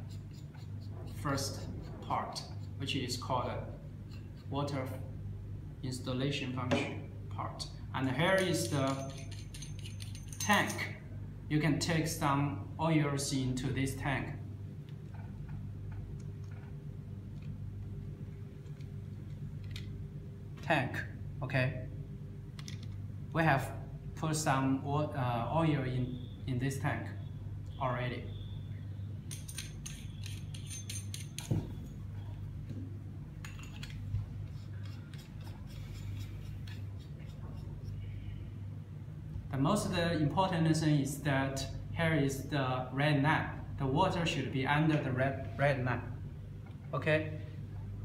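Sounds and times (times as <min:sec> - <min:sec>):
steady low hum: 0:00.0 - 0:48.0
metal parts screwed together: 0:08.3 - 0:10.9, 0:29.3 - 0:31.6, 0:33.4 - 0:37.4.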